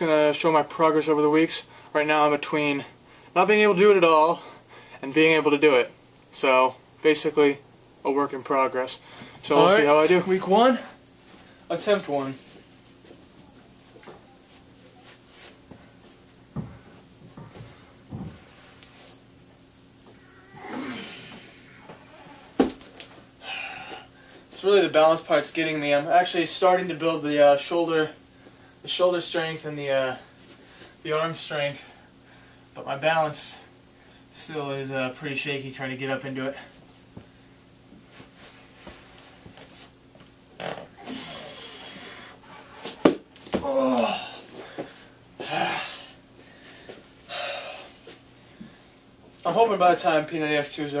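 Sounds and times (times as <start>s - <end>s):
hands and feet tapping on floor: 15.6s - 18.9s
feet thumping on floor: 16.5s - 18.5s
strained breath: 44.0s - 48.9s.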